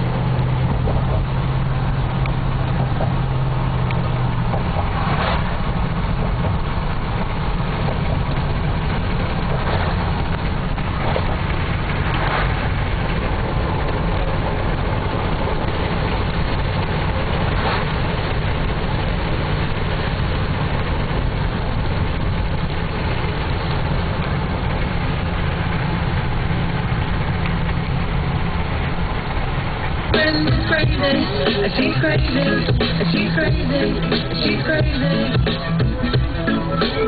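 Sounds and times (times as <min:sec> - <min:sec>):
car engine and tyre noise: 0:00.0 - 0:37.0.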